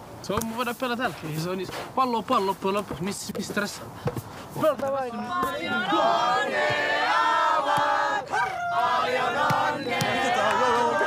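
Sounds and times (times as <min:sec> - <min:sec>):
young men chanting in unison: 0:05.1 - 0:11.0.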